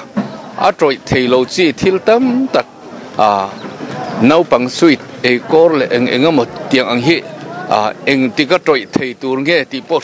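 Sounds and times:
man speaking into microphone: 0:00.6 - 0:10.0.

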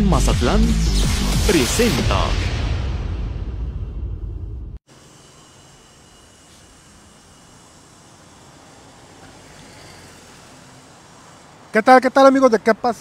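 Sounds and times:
road traffic: 0:04.8 - 0:13.0.

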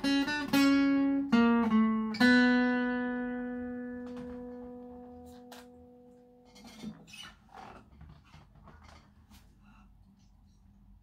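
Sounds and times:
guitar handling knocks and rustles: 0:03.5 - 0:09.6.

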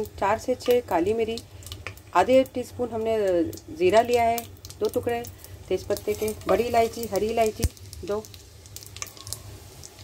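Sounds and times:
spices sizzling in hot oil: 0:00.0 - 0:10.0
small pops and crackles: 0:00.6 - 0:02.2, 0:03.3 - 0:10.0.

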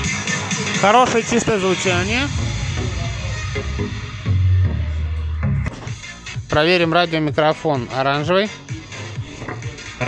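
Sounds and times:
electronic dance music: 0:00.0 - 0:10.0
deep bass note: 0:01.0 - 0:07.0.

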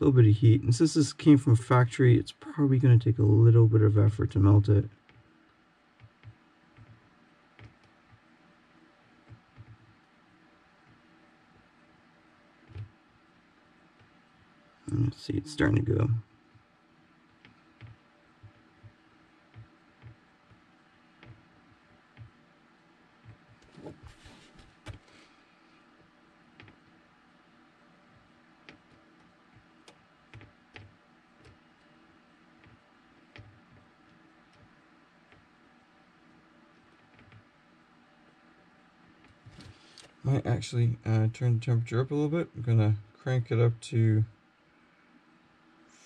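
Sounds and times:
faint room hum: 0:00.0 - 0:46.0.

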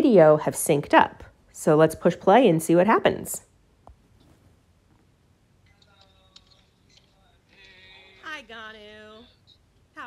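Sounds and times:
person's voice on playback: 0:00.0 - 0:03.5, 0:05.7 - 0:10.0.

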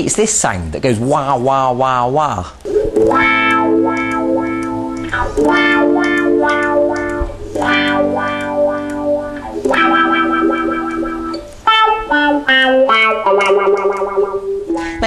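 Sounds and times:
electric guitar wah-wah chords: 0:02.6 - 0:15.0.

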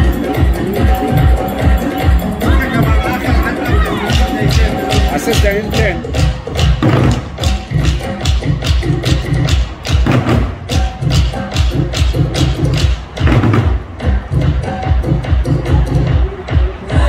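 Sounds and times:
drums in fast rhythm: 0:00.0 - 0:17.0.

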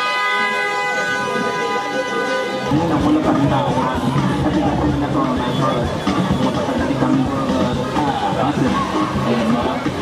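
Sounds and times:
vehicle horn long blast: 0:00.0 - 0:02.7.

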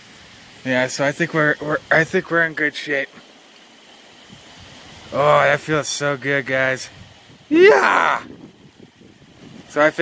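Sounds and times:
steady rain falling: 0:00.0 - 0:10.0.

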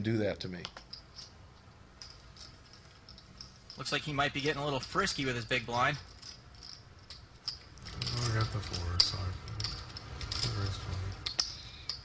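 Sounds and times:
poker chips clicking: 0:06.2 - 0:12.0.

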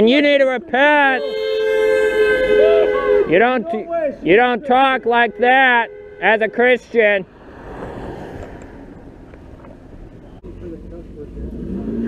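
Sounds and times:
long steady tone: 0:01.1 - 0:03.4
car driving past: 0:07.2 - 0:12.0.

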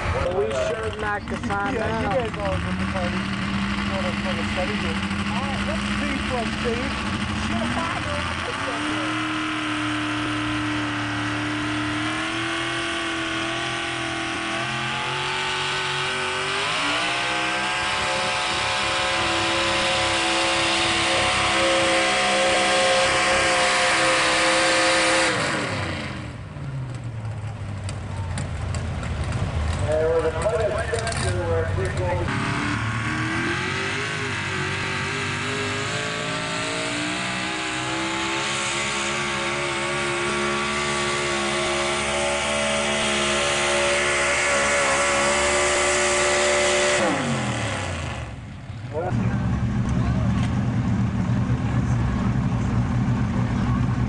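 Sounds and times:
truck engine at high revs: 0:00.0 - 0:54.0.

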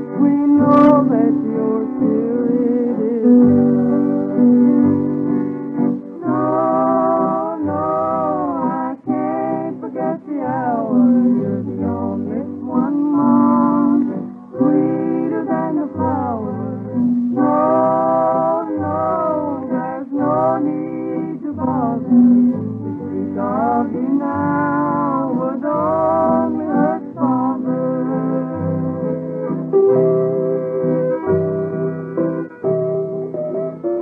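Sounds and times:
old-time country music: 0:00.0 - 0:34.0.

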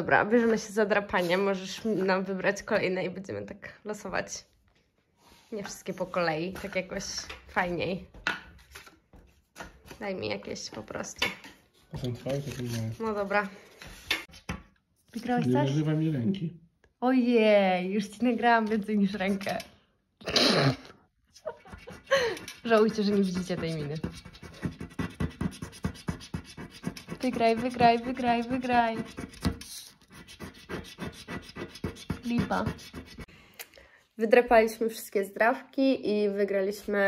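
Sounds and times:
scratch card being scratched: 0:19.1 - 0:19.6, 0:21.4 - 0:33.3.

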